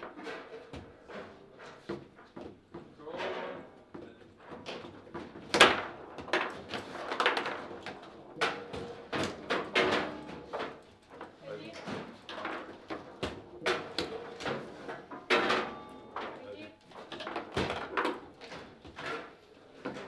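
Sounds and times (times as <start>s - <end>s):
table football clacks and knocks: 0.0s - 20.0s.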